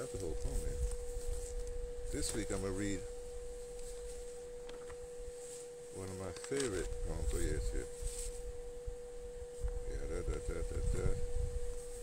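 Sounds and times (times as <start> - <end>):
steady high hum: 0.0 - 12.0.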